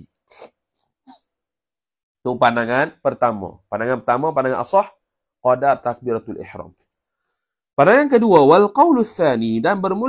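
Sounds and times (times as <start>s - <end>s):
man breathing: 7.0s - 7.7s.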